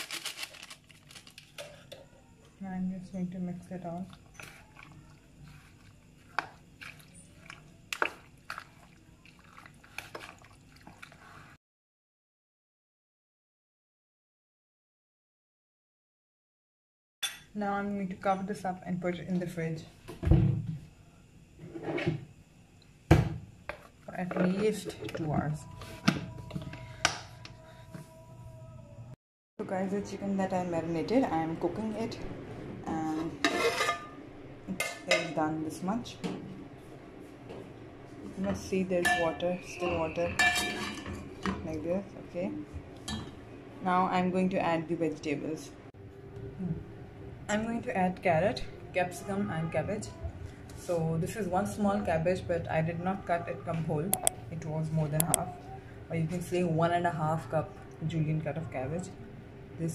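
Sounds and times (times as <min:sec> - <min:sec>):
wet squelching of marinade: 0:04.2 - 0:11.6
pot lid metallic scrape: 0:33.3 - 0:34.2, 0:40.3 - 0:41.2.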